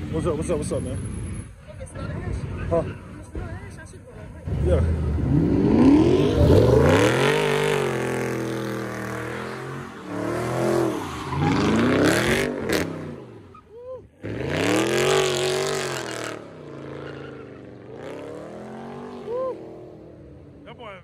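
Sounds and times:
car engine revving: 4.4s - 13.6s, 14.2s - 20.9s
tyres squealing: 9.1s - 12.2s, 16.7s - 18.1s.

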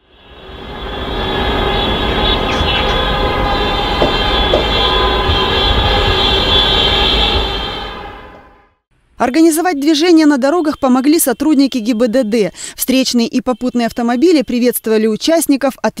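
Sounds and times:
rumble of passing cars: 0.0s - 8.6s
car horns sounding together: 3.0s - 8.5s.

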